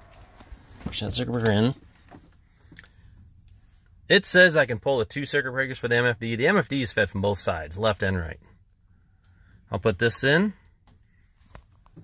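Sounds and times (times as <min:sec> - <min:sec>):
quiet handling sounds: 0:00.0 - 0:04.1, 0:10.6 - 0:12.0
steady low hum: 0:00.0 - 0:12.0.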